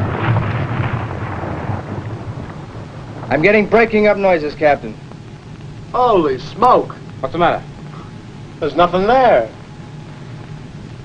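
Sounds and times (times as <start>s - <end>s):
distant explosion rumble: 0.0s - 6.0s.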